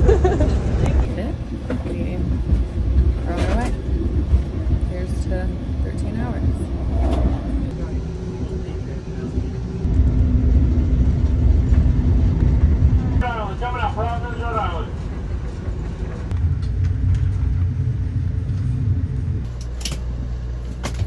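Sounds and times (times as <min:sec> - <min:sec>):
train car rumble: 0:00.0 - 0:21.0
faint passenger voices: 0:07.6 - 0:09.9.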